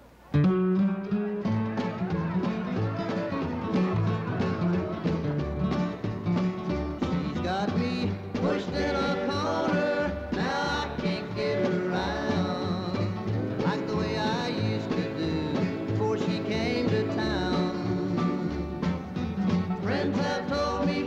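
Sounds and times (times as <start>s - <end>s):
country band playing: 0.0s - 21.0s.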